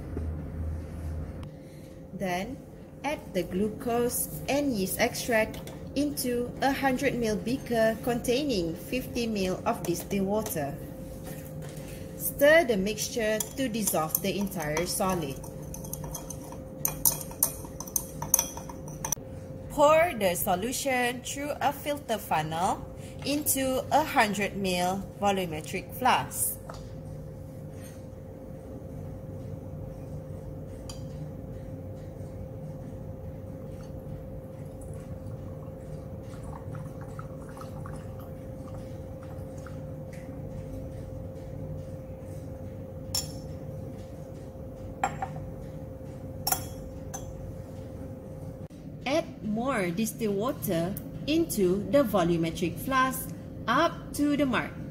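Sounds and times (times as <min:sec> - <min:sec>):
steady low hum: 0:00.0 - 0:54.9
stirring rod clinking on glass: 0:13.3 - 0:19.2.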